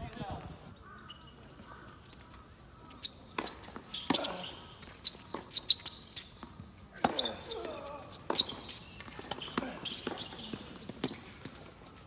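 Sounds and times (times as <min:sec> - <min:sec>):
tennis ball bouncing on hard court: 0:05.3 - 0:07.7, 0:08.3 - 0:11.6.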